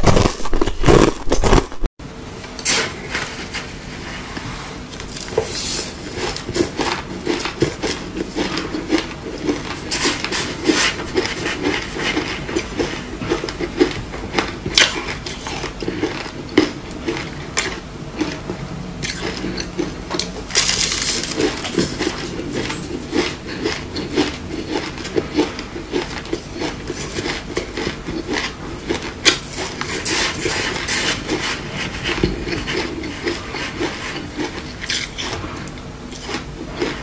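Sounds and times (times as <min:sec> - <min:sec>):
crunching frozen ice: 0:00.0 - 0:01.9, 0:19.0 - 0:35.4.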